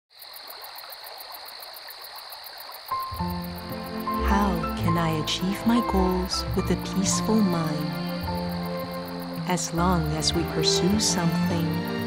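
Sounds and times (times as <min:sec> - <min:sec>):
insects and frogs trilling: 0:00.1 - 0:12.0
music with sustained notes: 0:03.0 - 0:12.0.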